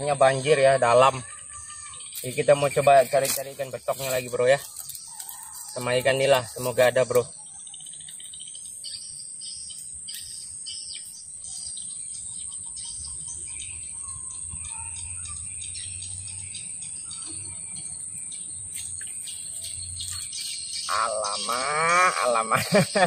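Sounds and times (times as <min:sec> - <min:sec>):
bird chirps: 0:00.0 - 0:23.0
high-pitched insect chorus: 0:00.0 - 0:23.0.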